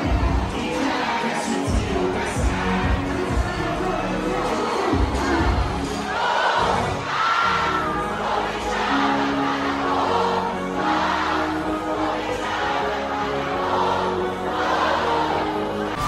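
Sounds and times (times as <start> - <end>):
crowd singing along: 0.0 - 16.0
live concert music over pa: 0.0 - 16.0.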